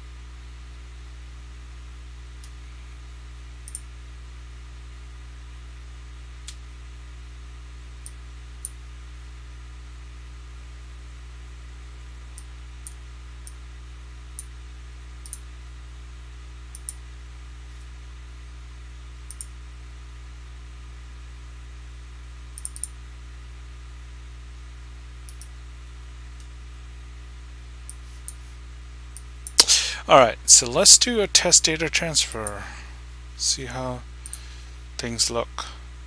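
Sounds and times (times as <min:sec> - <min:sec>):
steady low hum: 0:00.0 - 0:36.0
computer mouse clicks: 0:15.2 - 0:15.4, 0:16.7 - 0:17.0, 0:19.3 - 0:19.5, 0:22.6 - 0:22.9, 0:25.2 - 0:25.5.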